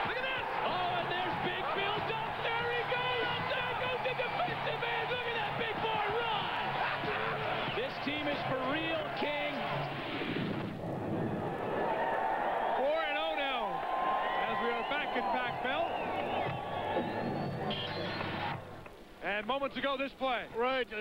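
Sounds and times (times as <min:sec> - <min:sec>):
voices shouting and talking: 0:00.0 - 0:09.9
noisy background: 0:00.0 - 0:21.0.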